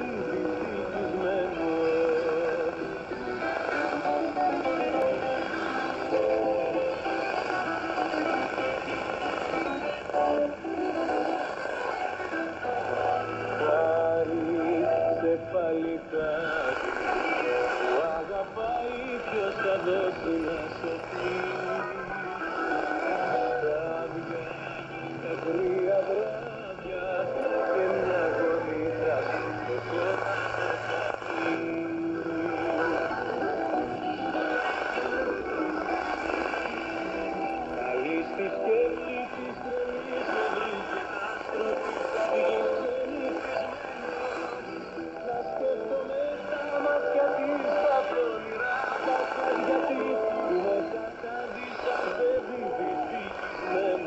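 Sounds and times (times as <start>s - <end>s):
radio music with voice: 0.0s - 54.0s.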